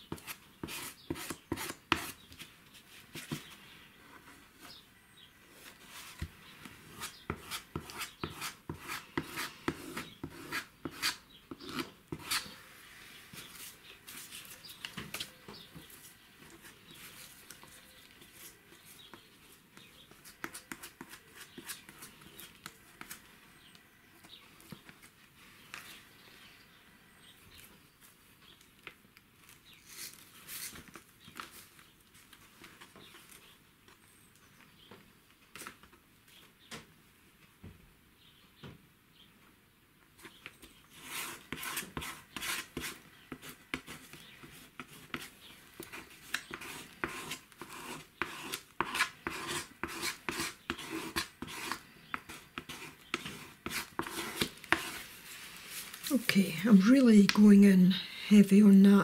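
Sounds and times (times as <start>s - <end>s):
brush scratching glue on paper: 0.1s - 2.2s, 6.9s - 12.5s, 40.9s - 55.1s.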